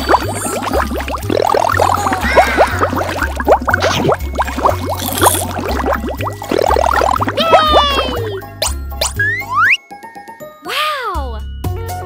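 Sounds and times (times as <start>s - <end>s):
background music with bass line: 0.0s - 9.8s
cartoon bubbling blips: 0.0s - 9.8s.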